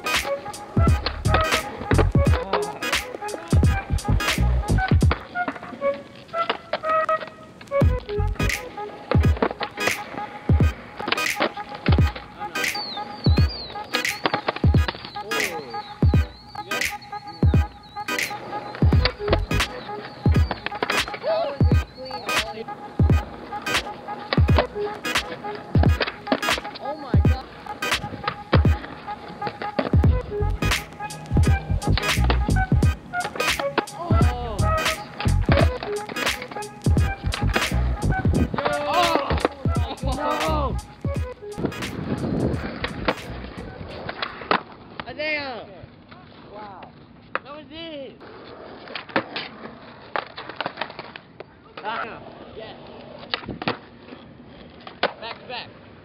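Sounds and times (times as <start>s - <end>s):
music with beat and vocals: 0.0s - 5.2s, 7.8s - 26.6s, 27.2s - 28.8s, 30.0s - 43.8s
skateboard wheels rolling on concrete: 0.0s - 56.0s
skateboard clacks: 8.5s - 30.0s, 34.7s - 40.6s, 41.6s - 45.1s, 48.6s - 52.0s, 54.6s - 55.5s.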